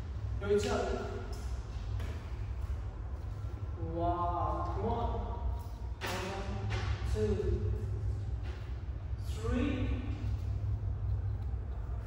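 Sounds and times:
steady low hum: 0.0 - 12.0
person speaking: 9.2 - 10.3.

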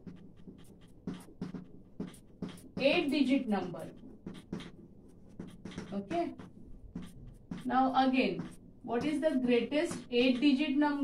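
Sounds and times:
chalk scratching on blackboard: 0.0 - 10.6.

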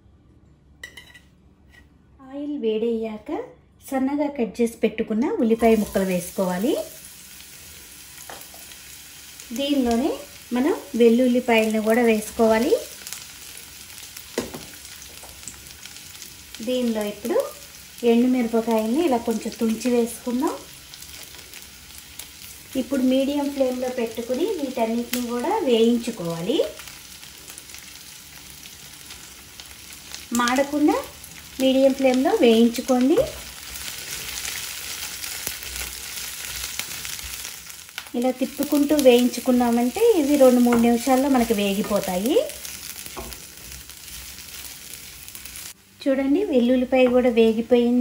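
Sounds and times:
garlic and onion sizzling in pan: 5.2 - 48.0
wooden spatula knocking: 43.1 - 43.4.

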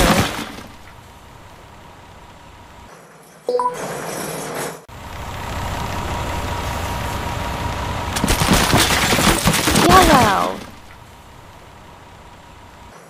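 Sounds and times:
cartoon truck engine running: 4.9 - 13.0
bricks crashing and tumbling: 8.2 - 10.8.

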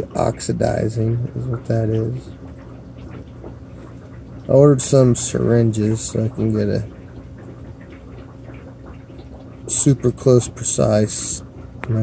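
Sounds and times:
aquarium pump hum: 0.0 - 12.0
water trickling: 0.0 - 12.0.

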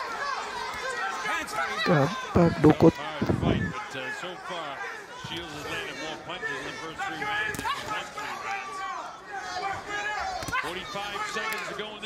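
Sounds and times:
arena background noise: 0.0 - 12.0
voices talking: 1.8 - 3.9.

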